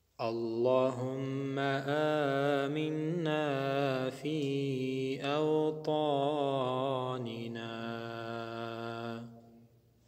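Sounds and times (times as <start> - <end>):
man chanting: 0.2 - 9.4.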